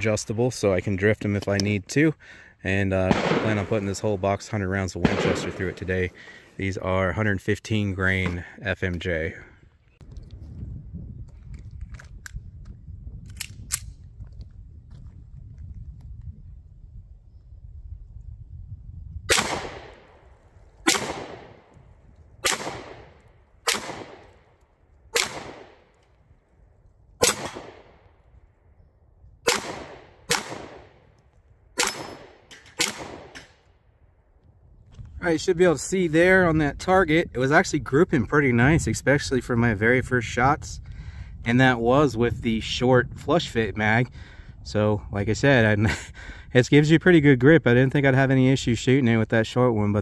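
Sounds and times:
low rumble: 0:02.6 - 0:07.2
pistol shots echoing: 0:03.0 - 0:04.1, 0:05.0 - 0:06.3, 0:19.3 - 0:20.2, 0:20.9 - 0:21.7, 0:22.4 - 0:24.4, 0:25.1 - 0:26.0, 0:27.2 - 0:28.1, 0:29.5 - 0:31.0, 0:31.8 - 0:33.6.

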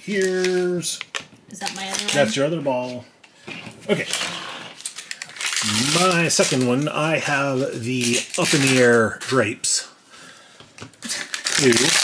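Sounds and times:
foil wrapper crinkling: 0:00.0 - 0:01.0, 0:01.6 - 0:02.5, 0:03.9 - 0:09.4, 0:11.0 - 0:12.0
person speaking: 0:00.0 - 0:03.1, 0:05.6 - 0:09.9.

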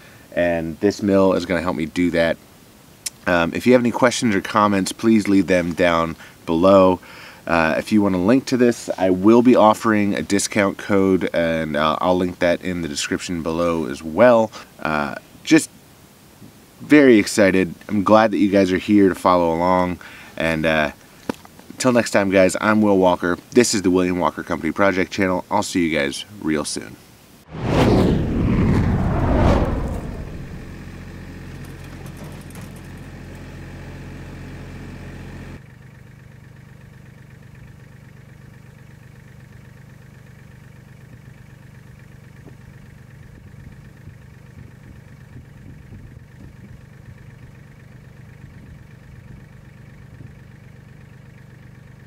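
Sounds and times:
loud scraping crash: 0:27.5 - 0:30.9
engine idling: 0:30.6 - 0:52.0.

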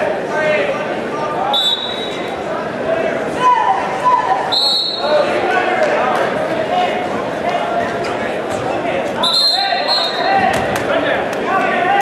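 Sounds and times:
shrill whistle: 0:01.5 - 0:02.3, 0:04.5 - 0:05.2, 0:09.2 - 0:10.4.

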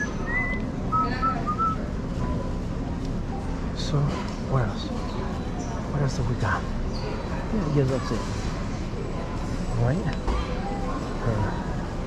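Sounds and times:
person whistling a tune: 0:00.0 - 0:01.8.

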